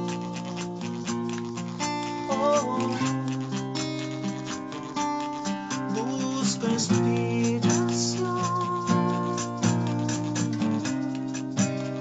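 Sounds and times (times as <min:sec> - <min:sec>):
acoustic guitar strumming: 0:00.0 - 0:12.0
maraca shaking: 0:00.0 - 0:12.0.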